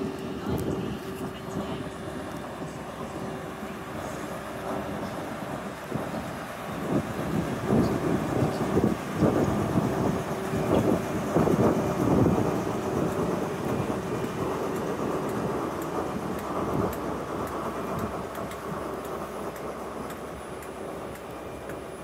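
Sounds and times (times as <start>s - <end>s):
diesel locomotive rumbling by: 0.0s - 22.0s
train coaches rolling on rails: 0.0s - 22.0s.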